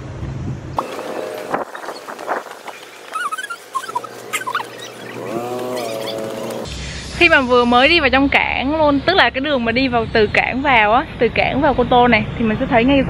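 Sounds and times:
sped-up footsteps clicking: 0:00.8 - 0:06.7
held squeaky tone: 0:01.7 - 0:06.6
high-pitched chirps: 0:02.7 - 0:06.2.

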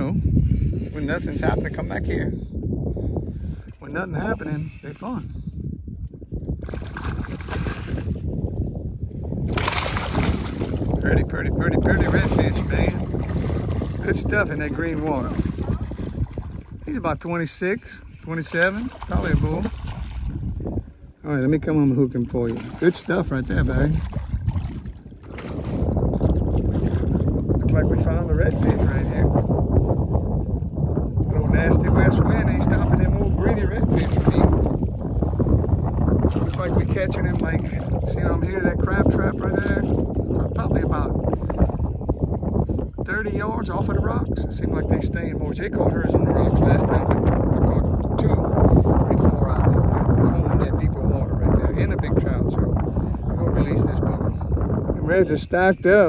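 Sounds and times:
wind rumbling on microphone: 0:00.0 - 0:56.0
fish thrashing and splashing: 0:06.6 - 0:08.2, 0:09.4 - 0:11.0, 0:18.5 - 0:20.5, 0:22.4 - 0:27.2
water sloshing: 0:06.6 - 0:08.3, 0:09.4 - 0:27.6.

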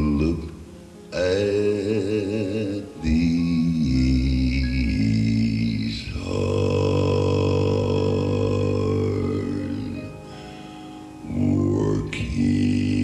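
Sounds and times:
male vocal group singing in harmony: 0:01.2 - 0:10.5, 0:11.2 - 0:13.0.

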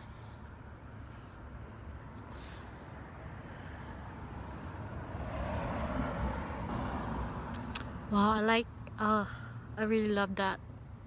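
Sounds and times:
vehicle passing by: 0:00.7 - 0:08.3.

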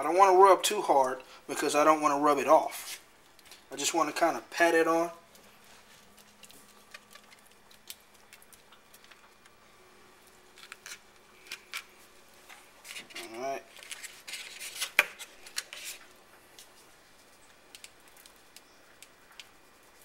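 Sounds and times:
foil packet crinkling: 0:05.0 - 0:09.6, 0:10.2 - 0:20.0.

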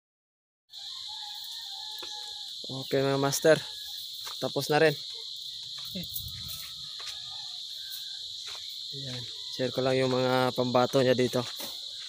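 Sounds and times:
crickets droning: 0:00.7 - 0:12.0.

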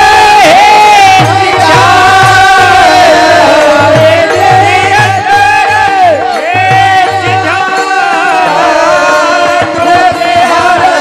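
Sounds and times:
drum beating: 0:00.0 - 0:11.0
men and boys chorus singing: 0:00.0 - 0:11.0.

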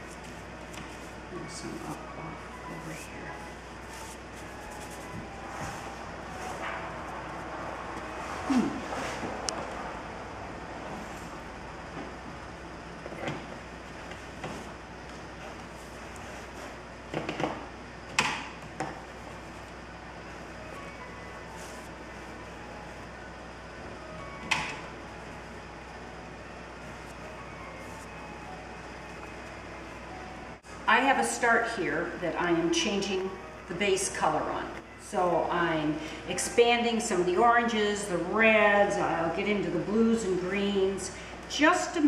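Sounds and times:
brush swishing on paper: 0:02.8 - 0:06.6.

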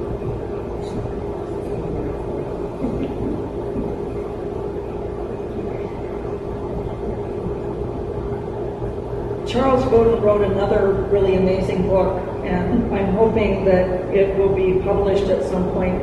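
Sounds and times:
constant hum: 0:00.0 - 0:16.0.

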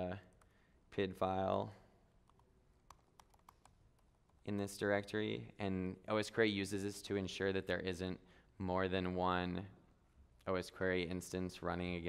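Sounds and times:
computer keyboard typing: 0:02.3 - 0:04.4.

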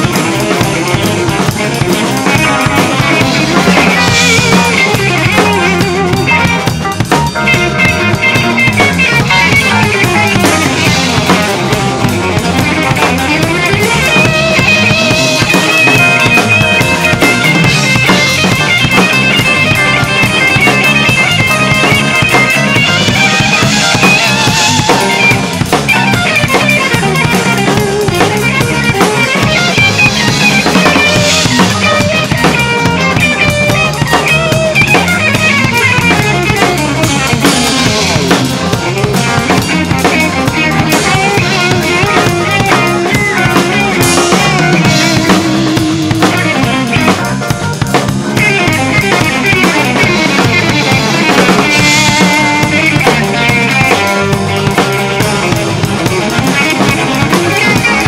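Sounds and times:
drum kit played with sticks: 0:00.0 - 0:58.0
jazz-rock fusion music with violin: 0:00.0 - 0:58.0.

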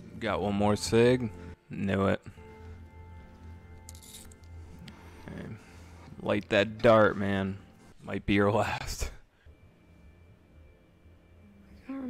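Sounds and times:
low pulsing drone: 0:00.0 - 0:12.0.

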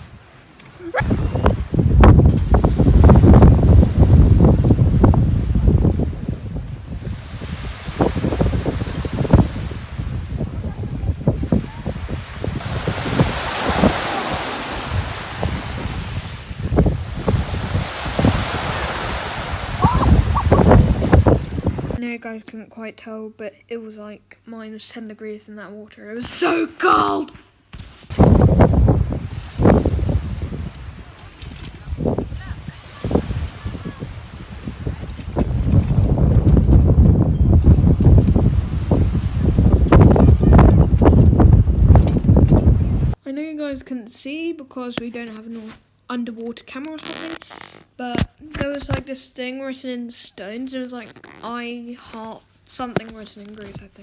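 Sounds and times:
small waves washing onto sand: 0:00.0 - 0:22.0, 0:28.2 - 0:36.6
wind buffeting microphone: 0:00.0 - 0:22.0, 0:28.1 - 0:43.2.

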